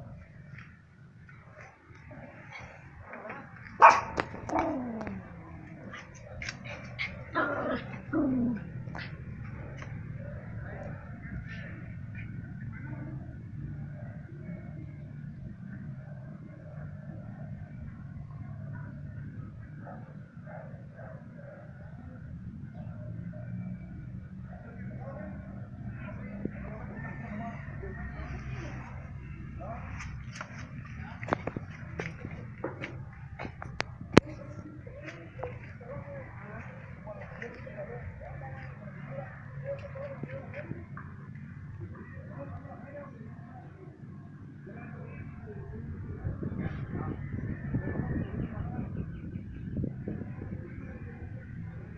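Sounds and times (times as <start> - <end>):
small dog barking: 3.8 - 5.1.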